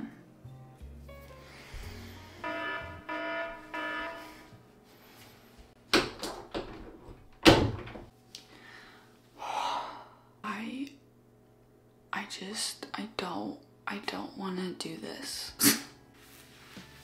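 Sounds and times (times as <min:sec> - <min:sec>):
electronic alarm beeps: 0:02.4 - 0:04.4
breathy exhale: 0:08.5 - 0:10.3.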